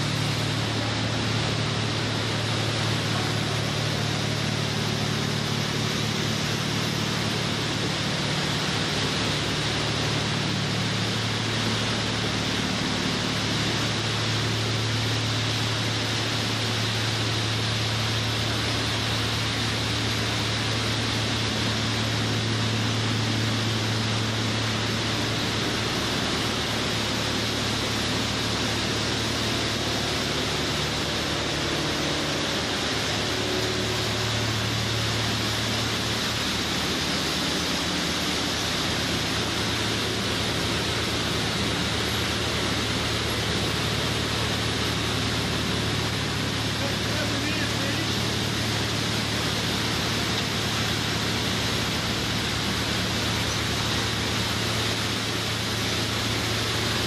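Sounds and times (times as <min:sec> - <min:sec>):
machinery running: 0:00.0 - 0:57.0.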